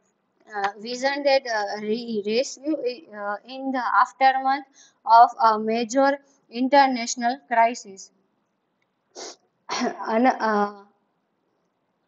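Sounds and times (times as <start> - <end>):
woman speaking: 0.5 - 8.1, 9.2 - 10.8.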